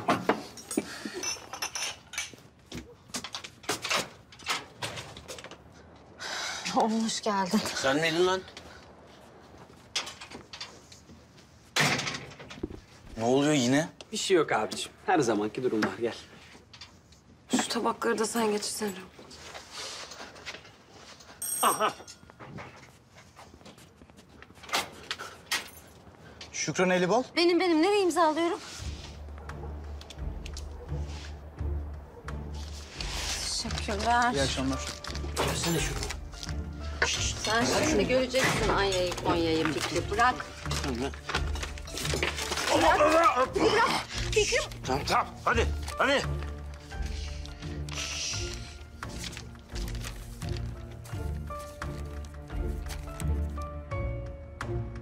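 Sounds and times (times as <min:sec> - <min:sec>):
cutlery and dishes clinking: 0:00.0 - 0:05.4, 0:37.1 - 0:43.4.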